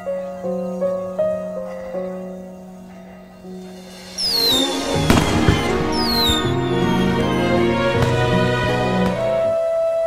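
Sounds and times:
soundtrack music: 3.4 - 9.9
falling firework whistle: 3.8 - 8.3
firework bangs: 3.8 - 9.2.

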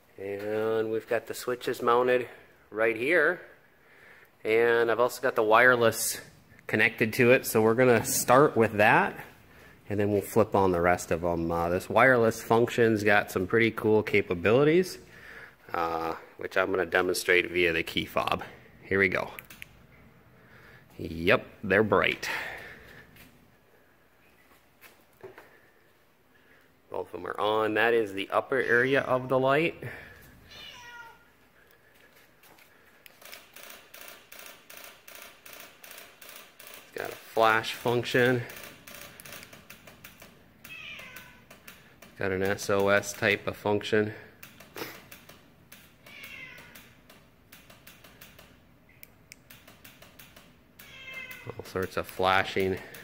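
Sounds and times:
cat high cry: 30.5 - 31.2, 40.7 - 41.4, 46.1 - 46.8, 50.8 - 51.5
cat meowing: 30.5 - 31.2, 40.7 - 41.4, 46.1 - 46.8, 50.8 - 51.5.

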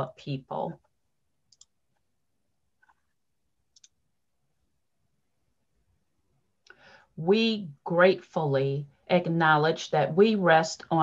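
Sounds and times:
computer mouse clicks: 1.5 - 2.0, 2.8 - 4.0.

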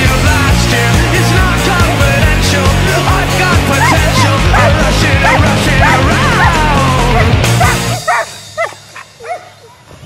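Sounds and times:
dog barking: 3.8 - 6.6, 7.2 - 9.8.

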